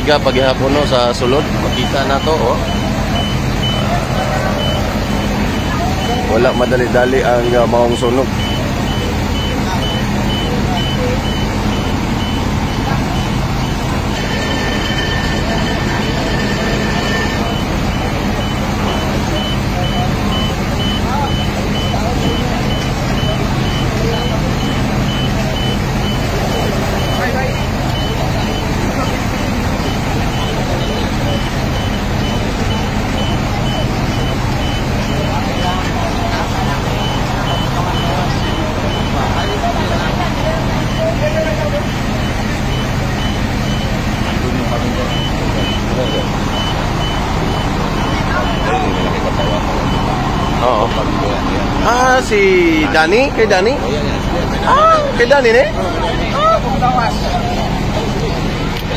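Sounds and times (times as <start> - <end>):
short high beeps: 0.0 - 51.2
fire truck engine running: 0.0 - 58.9
held tone: 0.0 - 58.9.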